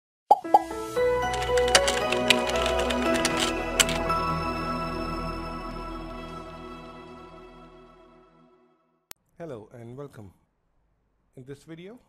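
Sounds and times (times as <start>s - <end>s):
light jingle music: 0.5s - 8.2s.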